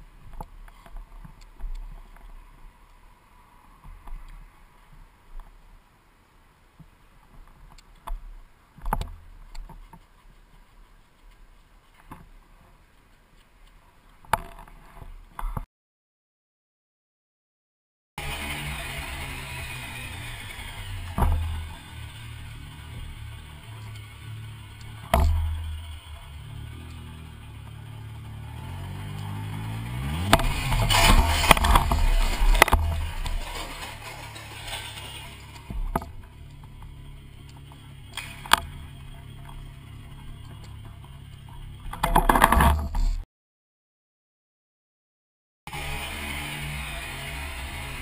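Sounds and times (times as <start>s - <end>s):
low motorcycle rumble: 18.2s - 43.2s, 45.7s - 48.0s
scraping and clatter: 29.0s - 43.2s.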